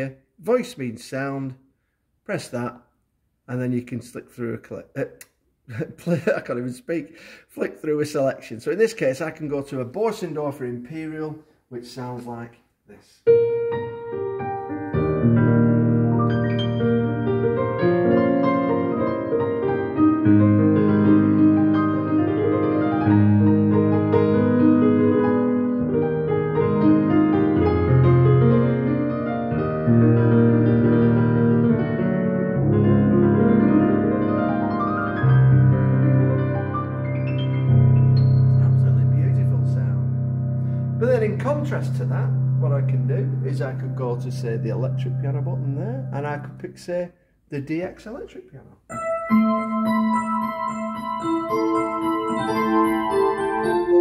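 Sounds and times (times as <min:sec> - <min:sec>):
piano playing slow held chords: 0:13.3 - 0:46.6, 0:48.9 - 0:54.0
piano bass note struck: 0:32.8 - 0:45.6.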